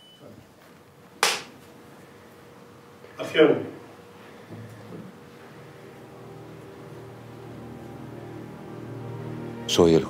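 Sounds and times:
clapperboard clack: 1.2 - 1.5.

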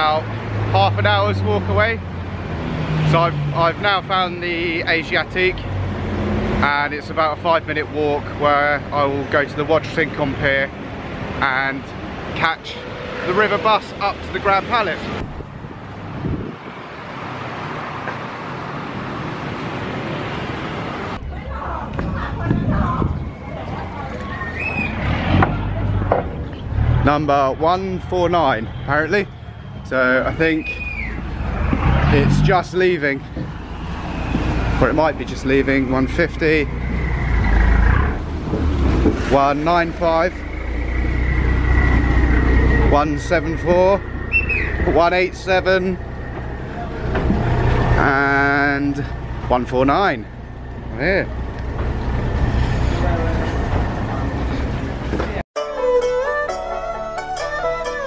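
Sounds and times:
city traffic noise: 0.0 - 58.0
boat diesel engine drone: 34.8 - 55.2.

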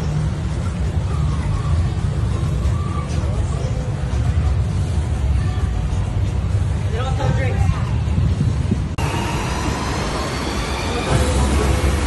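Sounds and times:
water rushing: 9.0 - 12.0.

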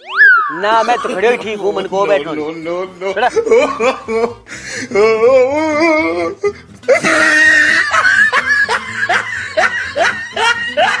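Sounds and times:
high-pitched laughter: 6.9 - 11.0.

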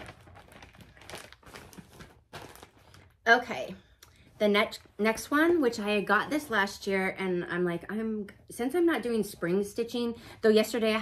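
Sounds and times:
plastic bag crinkling: 0.0 - 3.3.

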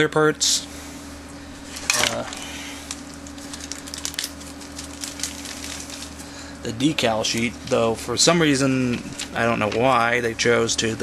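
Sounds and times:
steady low hum: 0.0 - 11.0
plastic bag crinkling: 1.6 - 8.0.

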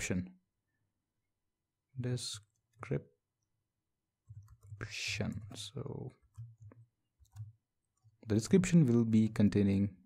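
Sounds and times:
faint computer keyboard keystrokes: 4.2 - 9.1.

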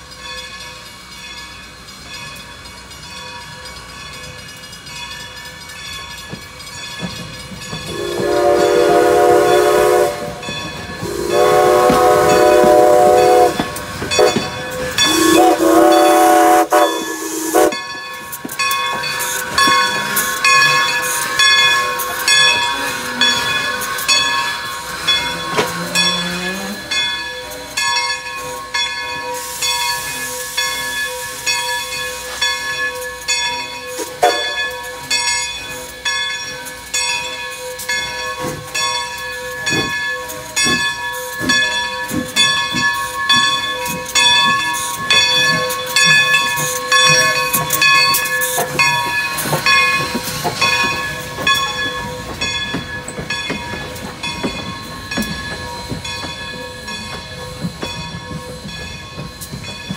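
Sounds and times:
bell ringing steadily: 0.0 - 11.6, 12.3 - 59.9
steam hissing: 5.8 - 35.0
steam locomotive whistle: 7.9 - 17.8, 34.0 - 34.6.

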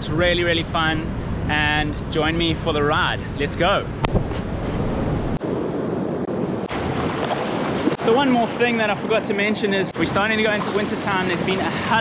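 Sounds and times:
wind buffeting microphone: 0.0 - 9.3
ocean surf washing: 0.1 - 12.0.

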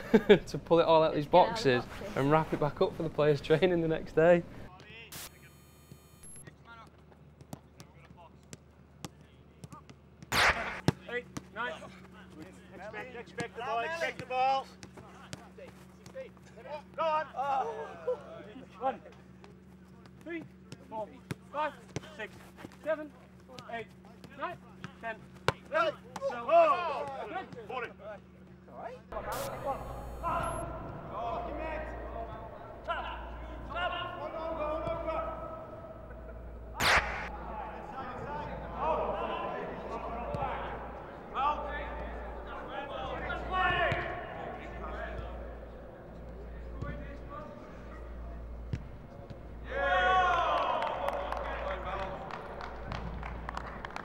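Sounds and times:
players calling and chattering: 0.0 - 54.0
players' voices calling: 29.1 - 53.5
steady low hum: 29.1 - 54.0.

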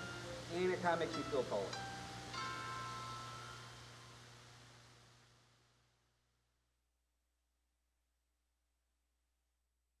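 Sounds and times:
low steady hum: 0.0 - 6.4
ringing chime-like note: 1.2 - 3.8.

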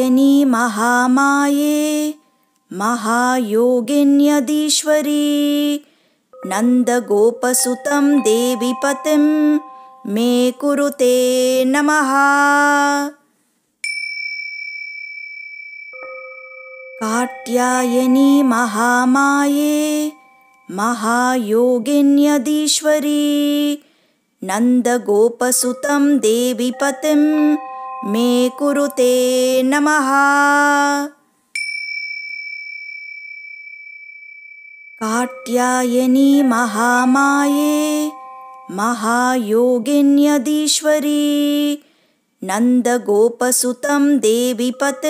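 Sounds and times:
small bell ringing: 6.4 - 11.0, 13.8 - 21.6, 25.6 - 30.6, 31.6 - 39.6
held chanted note: 35.0 - 39.6.

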